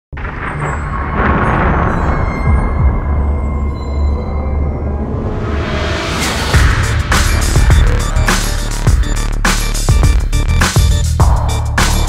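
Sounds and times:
deep bass rumble: 0:00.2 - 0:12.0
noisy whoosh: 0:03.4 - 0:10.0.

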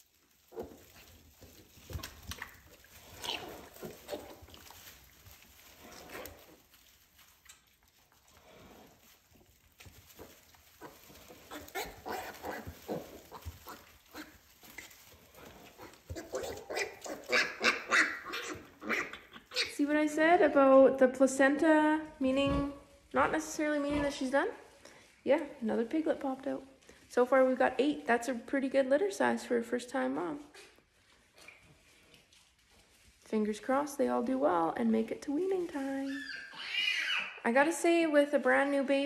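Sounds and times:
sow and piglets vocalising: 0:02.4 - 0:04.9, 0:10.1 - 0:19.9, 0:36.0 - 0:37.4.

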